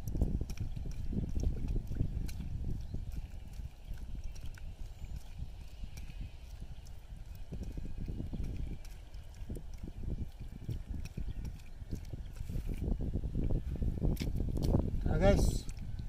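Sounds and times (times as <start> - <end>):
wet clicks and squelches: 0.0 - 16.0.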